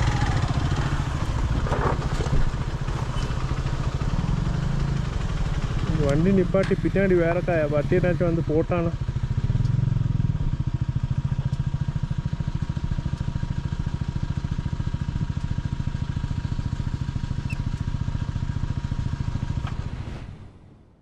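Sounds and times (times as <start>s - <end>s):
motorcycle engine idling: 0.0s - 19.9s.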